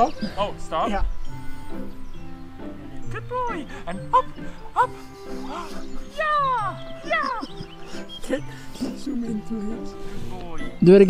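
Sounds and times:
background music: 0.0 - 11.0
rising and falling call: 1.1 - 10.8.

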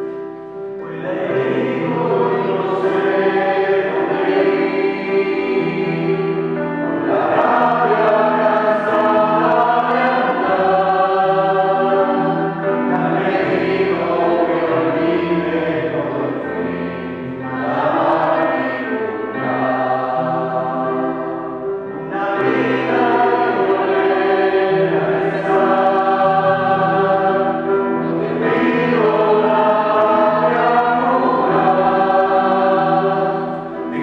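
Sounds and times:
electronic keyboard: 0.0 - 34.0
mixed choir singing a hymn: 0.0 - 34.0.

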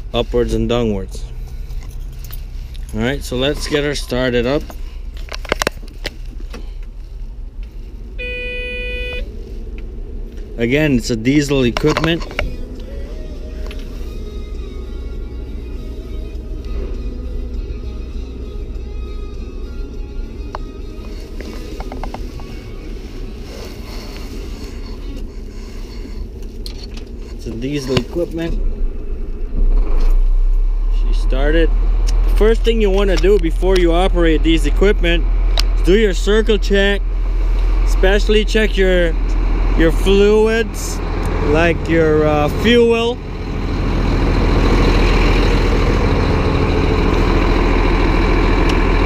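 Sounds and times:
diesel engine starting: 0.0 - 49.0
low steady rumble: 0.0 - 49.0
keys jangling in ignition: 1.4 - 3.8
electronic warning tone: 8.2 - 9.3.

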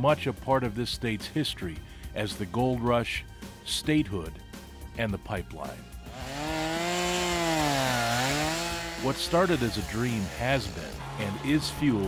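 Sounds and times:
small engine running: 6.0 - 12.0.

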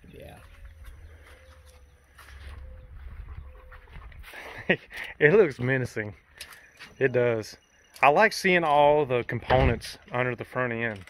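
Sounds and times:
person laughing: 4.2 - 5.3.

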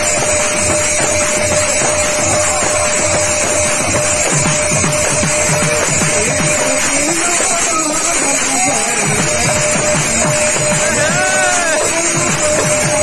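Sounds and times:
barrel drum fast rhythm: 0.0 - 13.0
hand cymbals ringing: 0.0 - 13.0
steady held tone: 0.0 - 13.0.

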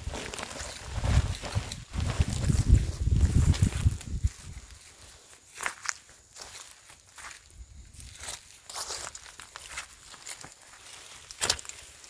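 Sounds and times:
footsteps crunching on dry ground: 0.0 - 12.0.

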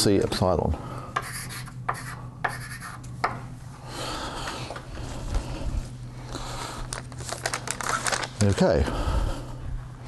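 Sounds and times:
paper or plastic crinkling: 6.8 - 8.8.

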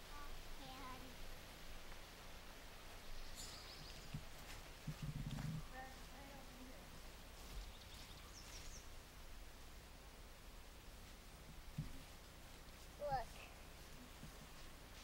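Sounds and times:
birds chirping: 2.0 - 9.4.

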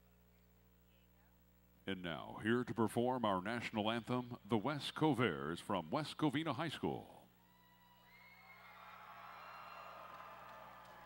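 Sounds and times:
low electrical hum: 0.0 - 11.0
arena crowd cheering: 7.4 - 11.0.

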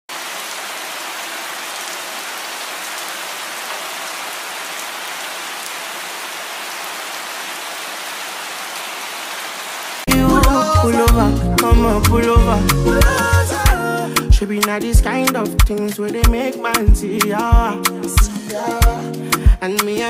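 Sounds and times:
steady rain hiss: 0.1 - 10.8.

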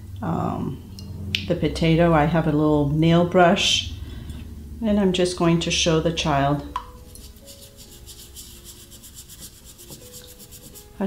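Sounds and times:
brush scrubbing potato skin: 7.0 - 11.0.

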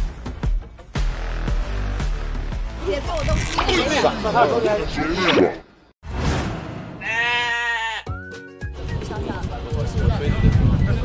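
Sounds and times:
sheep bleating: 7.0 - 8.1.

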